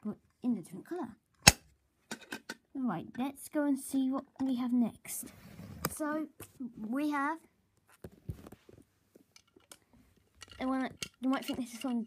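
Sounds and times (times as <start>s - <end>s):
plastic toy clicks and knocks: 10.4s - 12.0s.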